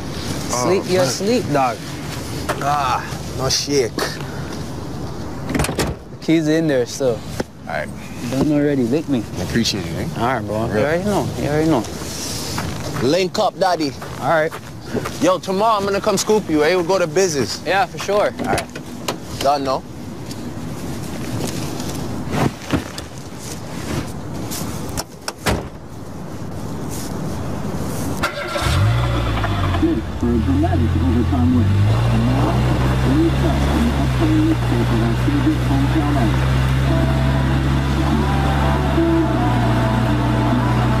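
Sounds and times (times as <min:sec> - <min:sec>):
car rumbling: 0:00.0 - 0:06.2, 0:28.1 - 0:41.0
car engine and road noise: 0:00.0 - 0:41.0
low steady hum: 0:28.8 - 0:41.0.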